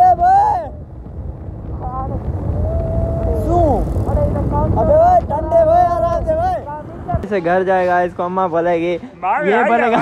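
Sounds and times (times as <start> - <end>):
motorcycle engine rumble: 0.0 - 7.8
wind on microphone: 0.0 - 9.1.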